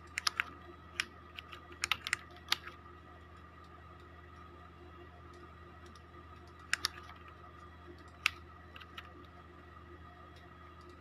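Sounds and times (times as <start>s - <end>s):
computer mouse clicks: 0.0s - 2.8s, 5.3s - 9.4s, 10.3s - 11.0s
keyboard keys clicking: 0.0s - 2.8s, 5.8s - 7.4s, 8.0s - 9.3s
faint steady hum: 0.0s - 11.0s.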